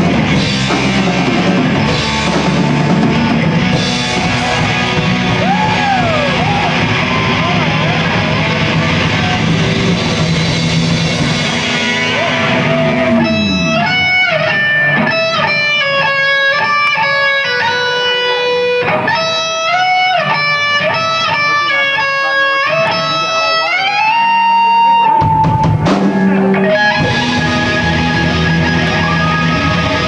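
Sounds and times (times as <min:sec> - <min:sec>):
downward guitar slide: 0:00.0 - 0:21.4
electric guitar single notes: 0:00.0 - 0:30.0
live punk rock band: 0:00.0 - 0:30.0.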